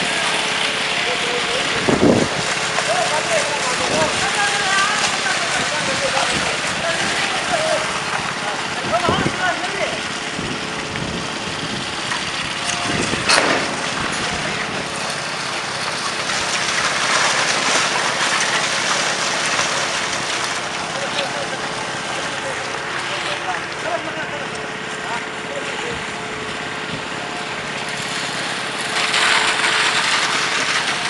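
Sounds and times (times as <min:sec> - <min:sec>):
construction machinery running: 0:00.0 - 0:31.0.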